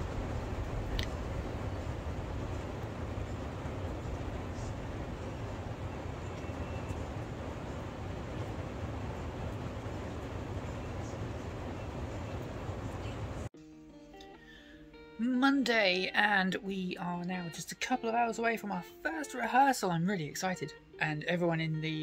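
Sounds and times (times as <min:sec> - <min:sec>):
rain falling steadily: 0:00.0 - 0:13.5
quiet background music: 0:00.0 - 0:22.0.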